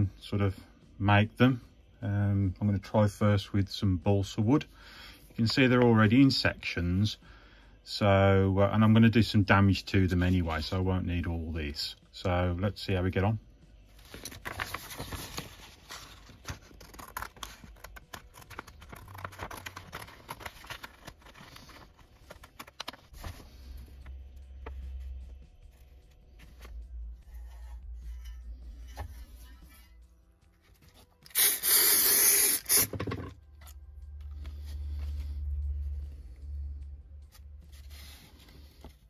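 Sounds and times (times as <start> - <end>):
paper rustling and crackling: 13.9 - 26.9
paper tearing: 14.1 - 23.4
scissors cutting paper: 16.1 - 21.8.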